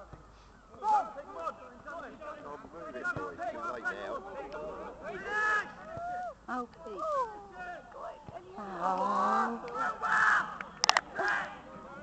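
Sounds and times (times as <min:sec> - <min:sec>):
players shouting: 0:00.8 - 0:12.0.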